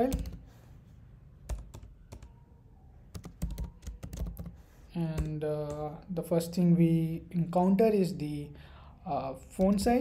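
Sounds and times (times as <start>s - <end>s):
computer keyboard typing: 0.0s - 0.4s, 1.4s - 2.4s, 3.1s - 6.0s.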